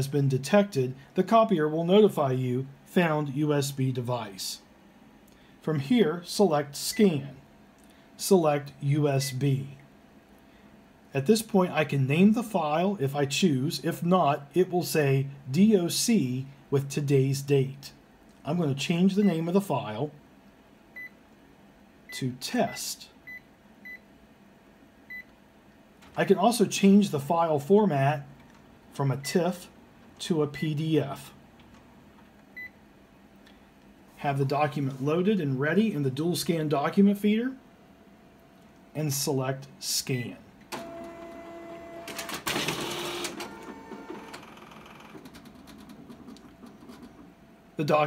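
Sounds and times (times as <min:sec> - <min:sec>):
mechanical paper feeding noise: 0:40.7 - 0:47.1
copier motor whine: 0:40.7 - 0:47.2.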